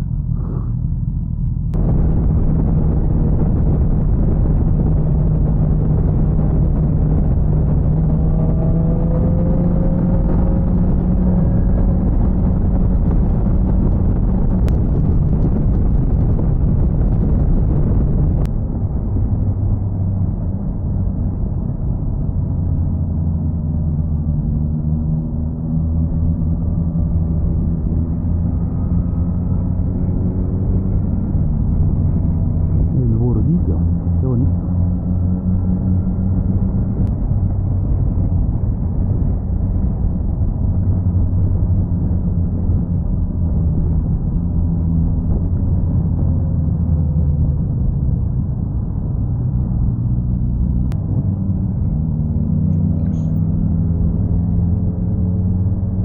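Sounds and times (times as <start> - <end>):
motorcycle engine drone: 0.0 - 56.0
wind rumble on microphone: 0.0 - 56.0.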